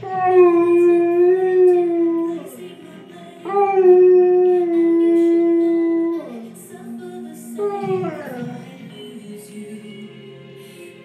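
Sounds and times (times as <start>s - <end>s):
dog howling: 0.0s - 2.8s, 3.5s - 6.6s, 7.6s - 8.6s.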